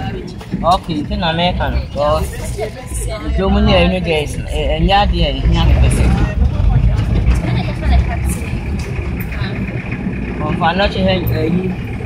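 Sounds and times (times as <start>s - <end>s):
vehicle engine and road rumble: 0.0s - 12.0s
voices talking: 0.0s - 12.0s.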